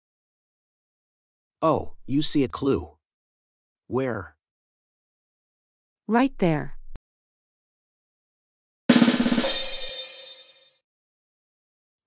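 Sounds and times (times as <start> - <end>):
rapid drum strokes: 8.9 - 10.4
cymbal crash: 8.9 - 10.6.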